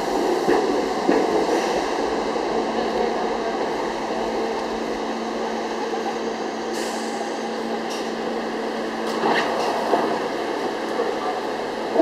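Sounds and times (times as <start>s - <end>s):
subway train coming to a stop: 0.0s - 12.0s
train doors opening: 6.6s - 8.3s.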